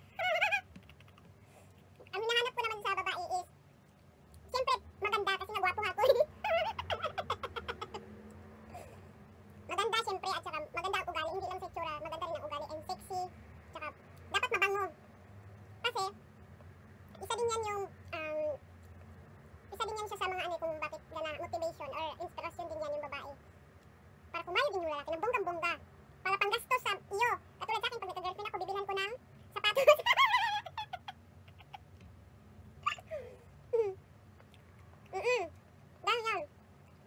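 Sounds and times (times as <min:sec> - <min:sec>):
woman giggling: 0:29.7 - 0:31.8
chewing clicks: 0:34.4 - 0:35.1.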